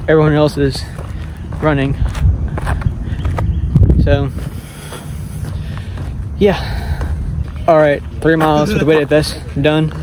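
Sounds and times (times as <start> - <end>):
footsteps on asphalt: 0.0 - 10.0
wind rumbling on microphone: 0.0 - 10.0.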